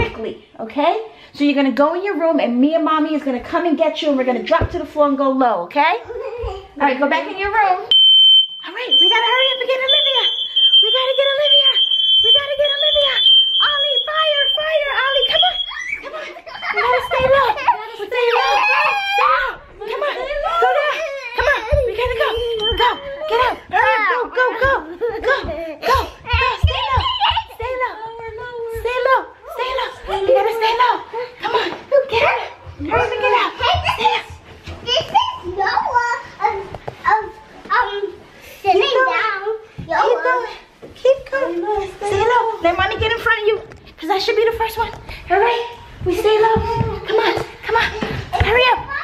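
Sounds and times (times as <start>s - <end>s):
woman talking: 0.0s - 6.1s, 6.8s - 7.9s, 8.6s - 18.9s, 22.0s - 26.9s, 40.4s - 48.9s
smoke alarm high tone: 7.9s - 17.4s, 22.3s - 23.2s.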